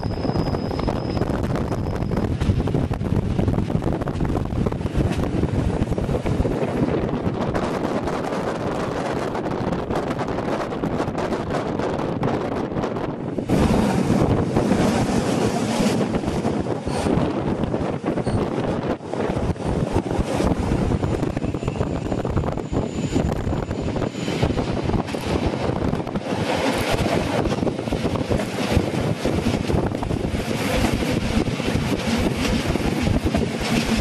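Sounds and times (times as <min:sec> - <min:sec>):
train wheels rumbling on rail: 0:00.0 - 0:34.0
wind buffeting microphone: 0:00.0 - 0:34.0.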